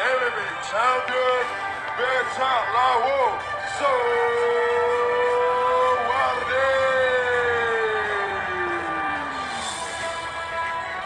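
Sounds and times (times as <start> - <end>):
announcer calling out drawn-out notes: 0.0 - 10.0
background music: 0.0 - 11.0.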